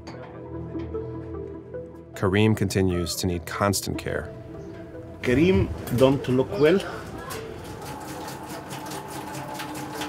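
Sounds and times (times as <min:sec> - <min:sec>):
water trickling from a jerrycan: 0:06.1 - 0:10.0.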